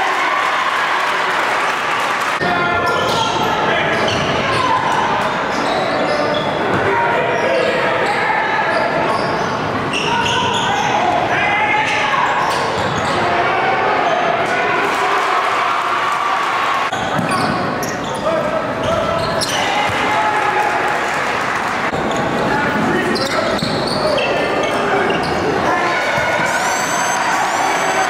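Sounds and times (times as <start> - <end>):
crowd voices and shouting: 0.0 - 28.0.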